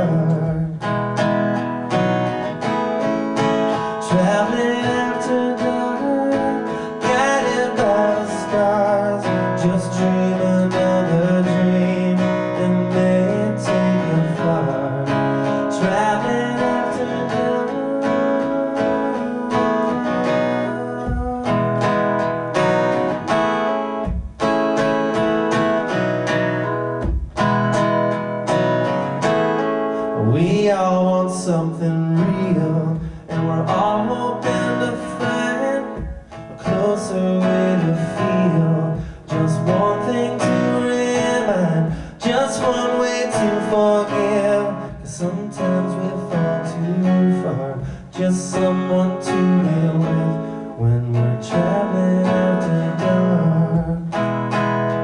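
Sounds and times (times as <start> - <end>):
acoustic guitar strummed: 0.0 - 55.0.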